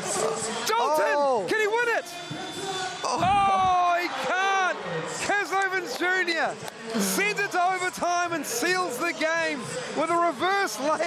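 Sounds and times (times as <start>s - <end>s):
crowd murmur: 4.8s - 10.1s.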